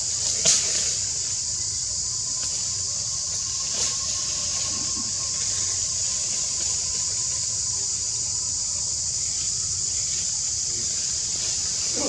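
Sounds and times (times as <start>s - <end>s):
cicada chorus droning: 0.0s - 12.0s
thin whine: 0.0s - 12.0s.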